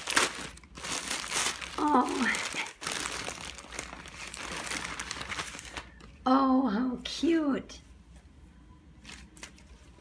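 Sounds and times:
plastic wrapping crinkling: 0.0s - 6.2s, 9.0s - 10.0s.

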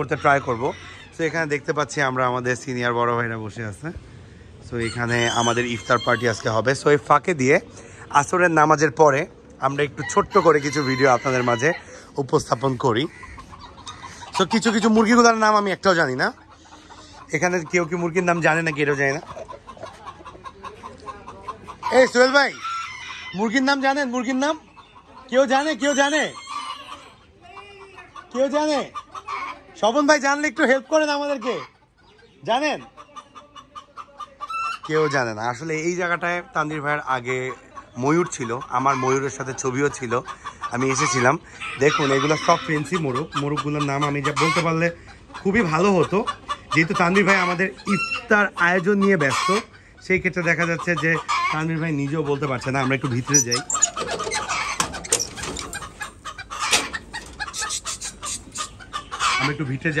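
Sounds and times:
chickens clucking: 0.0s - 60.0s
chicken wavering call: 4.8s - 6.5s, 51.0s - 59.8s.

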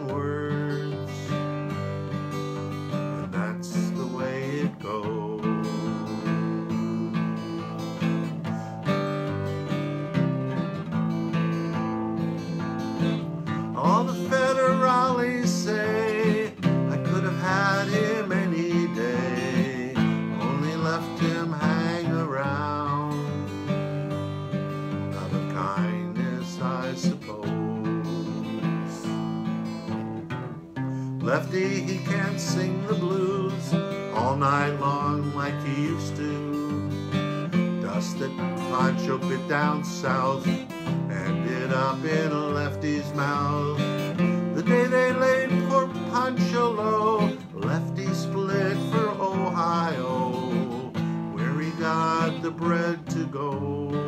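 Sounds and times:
man singing: 0.0s - 30.0s, 30.8s - 54.0s
acoustic guitar strumming: 0.0s - 54.0s.

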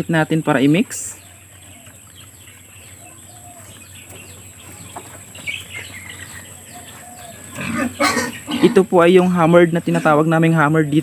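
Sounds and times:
small birds chirping: 0.0s - 11.0s
chickens clucking: 0.1s - 10.5s.

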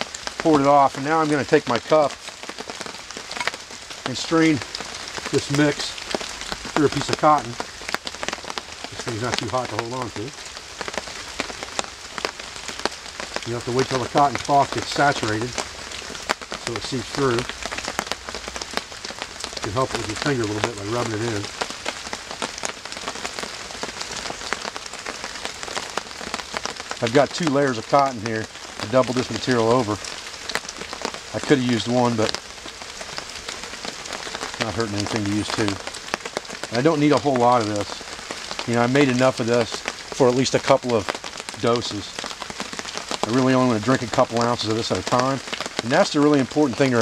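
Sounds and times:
campfire crackling: 0.0s - 47.0s
steady rain pattering: 0.0s - 47.0s.

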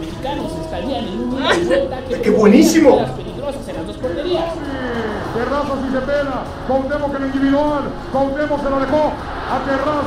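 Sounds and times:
man commentating: 1.0s - 3.4s.

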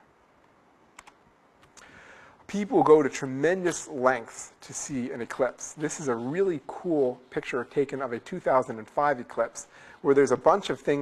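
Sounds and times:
faint sharp click: 0.4s - 1.9s.

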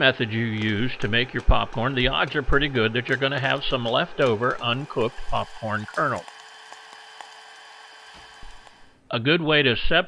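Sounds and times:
popcorn popper fan hissing: 0.0s - 9.1s.

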